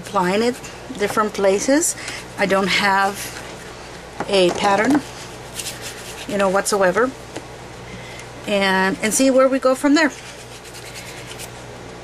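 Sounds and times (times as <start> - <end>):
fingers rubbing wax paste: 5.2 - 6.7, 10.1 - 11.5.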